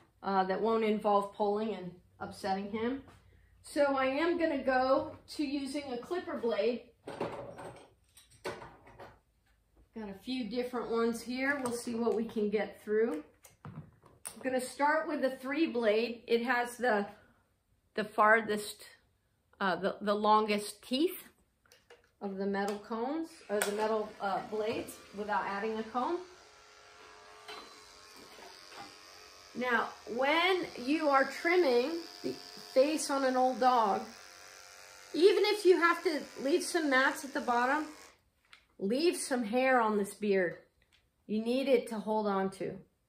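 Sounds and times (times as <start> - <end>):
electric clipper buzzing: 23.4 - 38.2.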